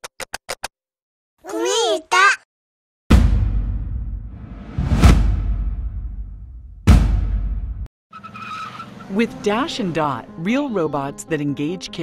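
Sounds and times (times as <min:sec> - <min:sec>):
deep booming impact: 0:03.1 - 0:07.9.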